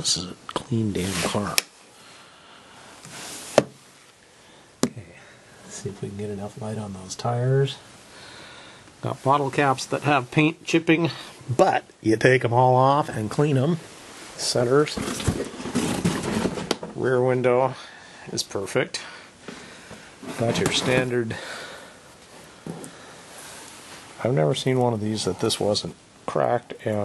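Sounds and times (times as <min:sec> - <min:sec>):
soft rustle: 0:00.8 - 0:02.2, 0:02.8 - 0:04.2, 0:13.2 - 0:16.7, 0:22.1 - 0:25.8.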